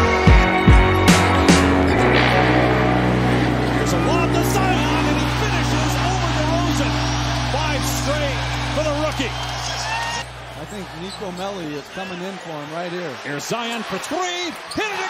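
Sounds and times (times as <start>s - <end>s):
low bass chord music: 0.0s - 11.0s
arena crowd noise: 0.0s - 15.0s
tv commentator speaking: 10.6s - 15.0s.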